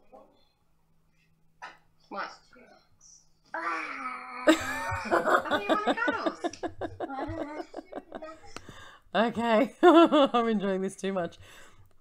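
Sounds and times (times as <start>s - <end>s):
child wailing: 3.5s - 5.4s.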